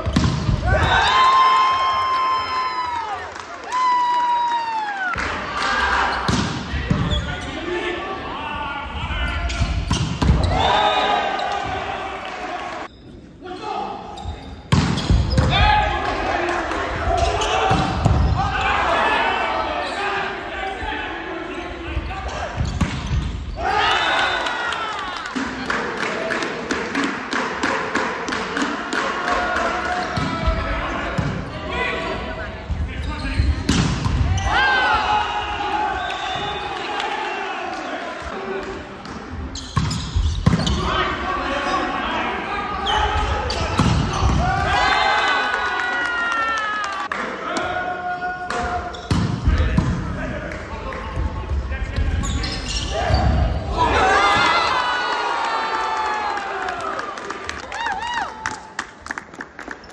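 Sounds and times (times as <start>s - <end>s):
people shouting and calling: 0.6s - 14.0s.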